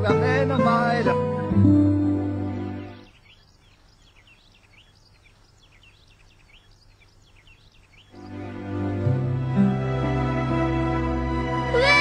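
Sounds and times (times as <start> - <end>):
faint birdsong chirps: 0.0 - 9.7
held music chord: 8.2 - 12.0.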